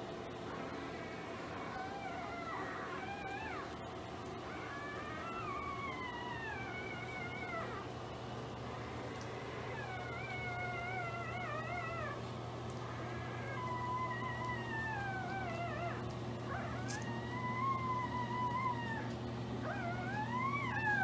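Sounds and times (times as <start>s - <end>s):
puppies crying high squeals: 0.5s - 8.0s, 9.0s - 21.0s.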